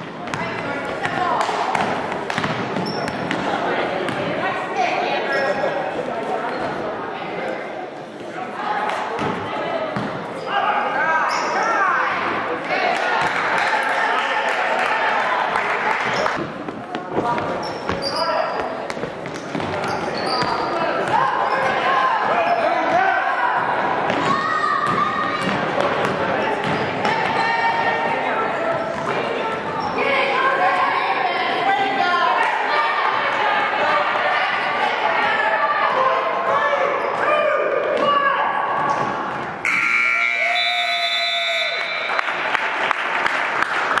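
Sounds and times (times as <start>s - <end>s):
sneakers squeaking: 1.8s - 3.5s, 5.2s - 5.8s, 11.2s - 12.0s, 16.1s - 23.0s, 24.1s - 27.6s, 28.6s - 30.0s, 36.9s - 37.3s
scoreboard horn buzzing: 39.6s - 41.4s.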